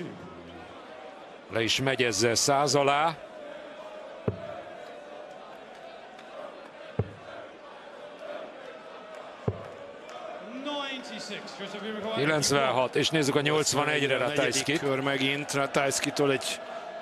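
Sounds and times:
crowd murmur: 3.2s - 10.6s
darts striking dartboard: 4.3s - 4.6s, 7.0s - 7.3s, 9.5s - 9.8s.

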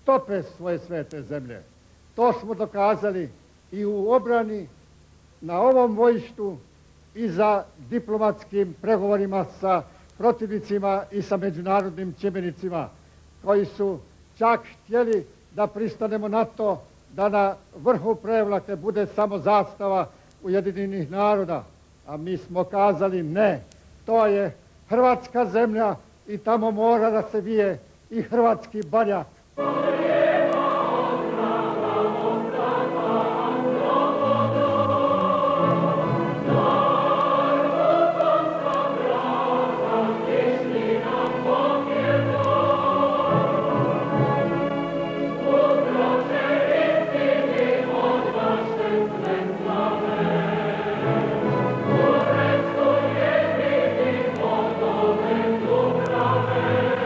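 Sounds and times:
choir singing: 29.6s - 57.0s.

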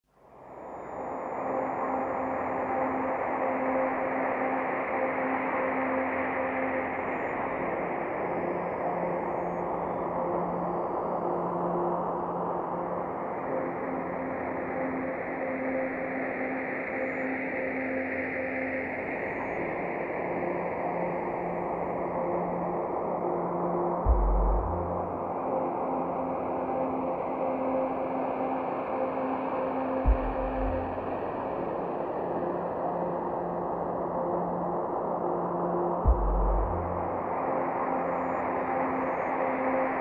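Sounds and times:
low synth drone notes: 24.0s - 25.4s, 30.0s - 31.8s, 35.7s - 37.5s.

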